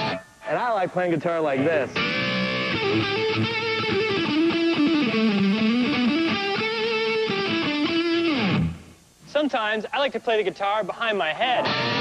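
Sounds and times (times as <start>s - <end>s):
electric guitar lead with vibrato: 0.0s - 0.5s, 1.8s - 8.9s, 11.6s - 12.0s.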